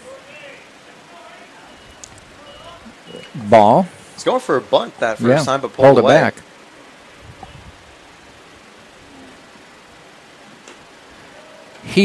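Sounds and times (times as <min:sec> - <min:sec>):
faint distant voices: 0:00.0 - 0:06.3
steady hiss: 0:00.0 - 0:12.0.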